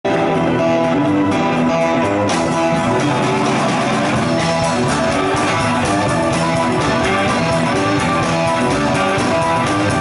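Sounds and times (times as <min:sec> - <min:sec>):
rock band playing live: 0:00.0 - 0:10.0
drum cymbals keeping time: 0:00.1 - 0:10.0.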